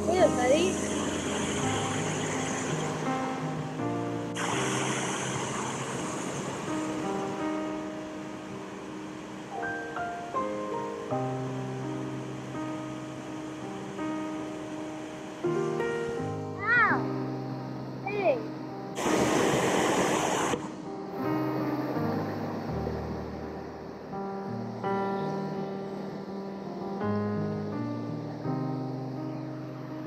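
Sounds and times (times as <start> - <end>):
river rapids rushing: 0.0 - 17.0, 19.0 - 24.1
instrumental music with slow chords: 0.0 - 30.0.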